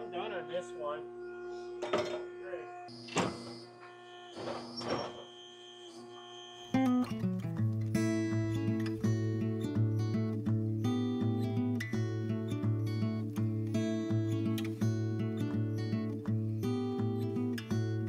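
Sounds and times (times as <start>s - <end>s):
strummed acoustic guitar music: 6.6s - 18.0s.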